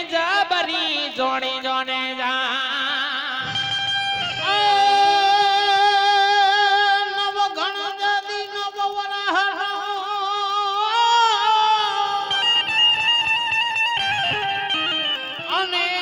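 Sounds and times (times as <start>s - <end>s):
instrumental accompaniment: 3.4s - 6.3s, 11.6s - 16.0s.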